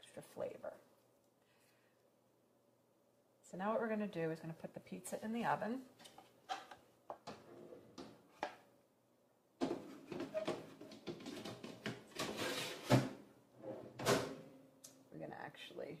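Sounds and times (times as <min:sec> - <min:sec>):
metal tray scraping and clattering: 0:09.6 - 0:14.4.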